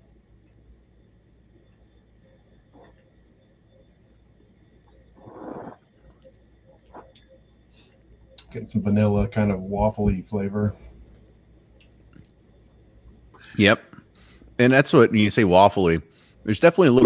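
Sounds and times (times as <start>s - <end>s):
faint ticks: 0.0s - 8.6s, 10.8s - 14.5s.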